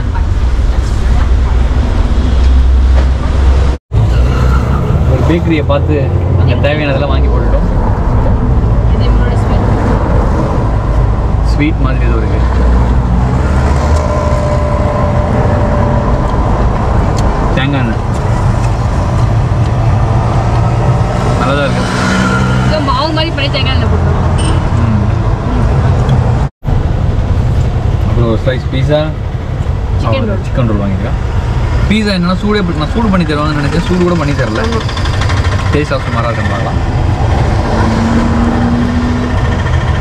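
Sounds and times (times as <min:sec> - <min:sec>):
street traffic: 0:00.0 - 0:40.0
auto-rickshaw engine idling: 0:32.7 - 0:36.9, 0:39.2 - 0:40.0.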